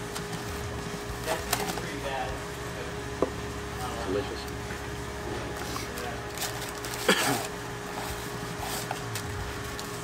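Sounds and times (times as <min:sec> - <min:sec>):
electrical hum: 0:00.0 - 0:10.0
clicks and rustles of eating: 0:01.2 - 0:02.0, 0:05.5 - 0:10.0.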